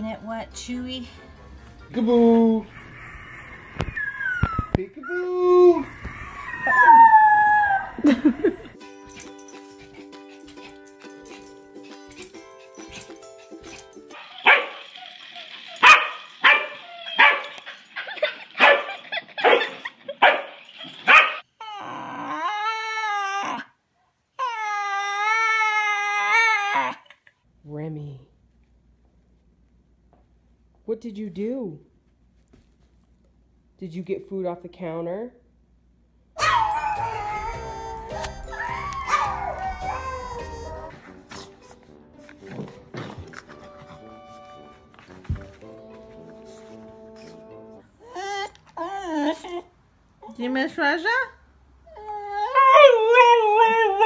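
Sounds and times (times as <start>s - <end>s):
background music: 0.0s - 3.2s, 7.1s - 14.2s, 36.4s - 48.0s
dog howling: 2.7s - 8.2s, 21.6s - 23.7s, 36.4s - 41.0s, 51.9s - 54.0s
dog barking sharply: 21.1s - 21.4s.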